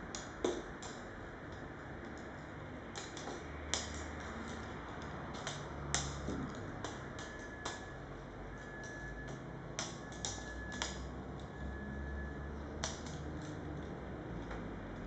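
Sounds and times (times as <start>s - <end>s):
sharp clicks and ticks: 0.1s - 7.9s, 8.7s - 11.6s, 12.6s - 15.0s
faint high whine: 6.2s - 12.8s.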